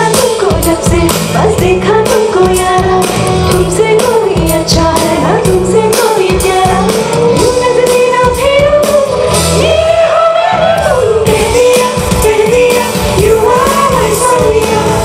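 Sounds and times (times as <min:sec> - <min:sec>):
bass guitar: 0:00.0 - 0:15.0
drums: 0:00.0 - 0:15.0
women singing: 0:00.0 - 0:15.0.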